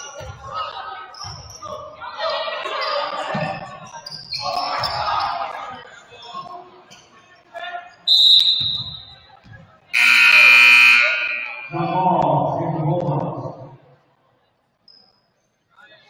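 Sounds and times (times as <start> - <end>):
voices: 0.0 - 13.9
referee whistle: 8.1 - 9.2, 10.0 - 12.0
scoreboard buzzer: 10.0 - 11.8.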